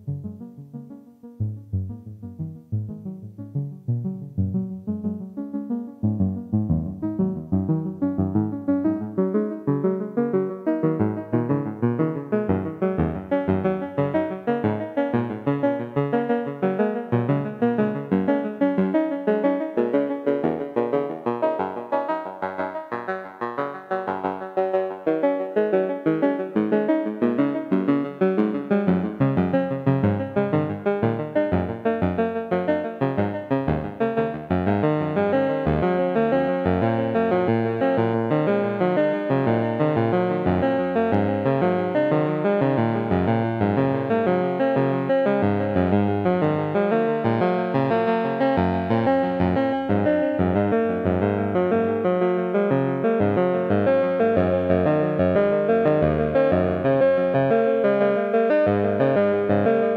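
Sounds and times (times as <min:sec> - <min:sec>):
modular synth note sequence: 0:00.0 - 0:15.4.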